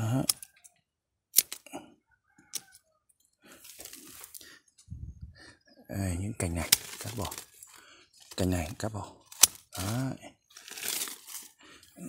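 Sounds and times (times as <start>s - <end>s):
pruning shears snipping branches: 1.4s - 1.7s, 6.5s - 11.5s
leaves rustling: 3.6s - 4.5s, 6.4s - 11.7s.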